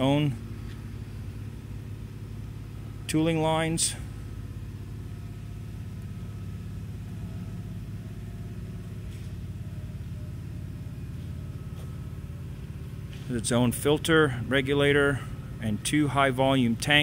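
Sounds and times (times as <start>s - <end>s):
low mechanical hum: 0.0s - 17.0s.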